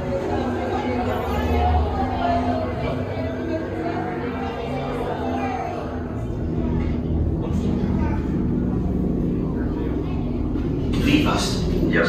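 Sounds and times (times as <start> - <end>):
faint voices: 0.0 - 12.0
low rumble and hum ambience: 0.0 - 12.0.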